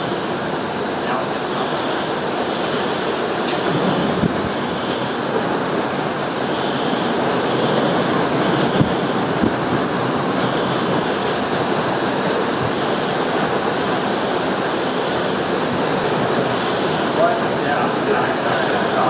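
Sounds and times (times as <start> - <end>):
hurricane wind: 0.0 - 19.0
torrential rain: 0.0 - 19.0.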